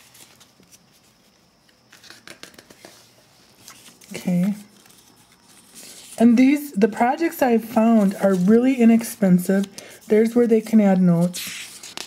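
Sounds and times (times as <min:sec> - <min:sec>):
paper pages rustling: 0:00.0 - 0:12.0.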